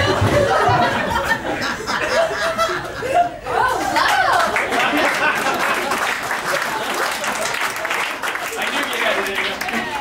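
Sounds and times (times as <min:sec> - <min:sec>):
audience applauding: 0:04.0 - 0:10.0.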